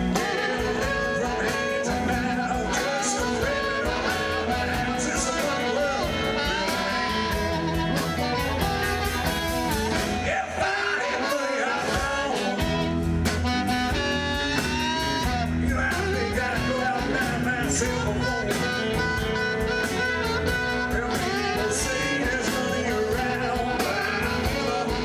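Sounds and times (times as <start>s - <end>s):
amplified harmonica bending notes: 0.0s - 10.2s, 11.0s - 25.0s
drums: 0.0s - 25.0s
electric guitar: 0.0s - 25.0s
upright bass: 0.0s - 25.0s.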